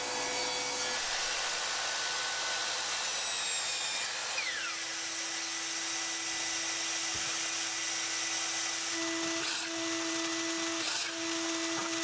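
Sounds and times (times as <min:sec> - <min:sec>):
electric motor humming: 0:08.0 - 0:12.0.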